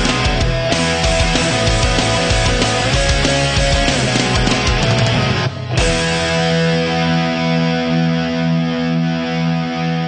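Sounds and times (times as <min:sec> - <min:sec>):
distorted electric guitar chord: 0:00.0 - 0:10.0.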